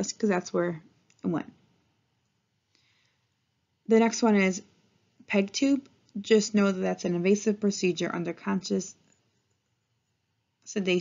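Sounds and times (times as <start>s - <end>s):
woman's voice: 0.0s - 1.6s, 3.9s - 4.7s, 5.3s - 9.0s, 10.7s - 11.0s.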